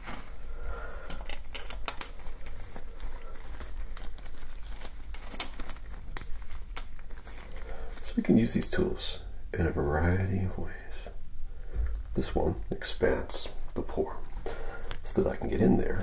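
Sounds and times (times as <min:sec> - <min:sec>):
gloves rustling and crinkling: 0:00.0 - 0:16.0.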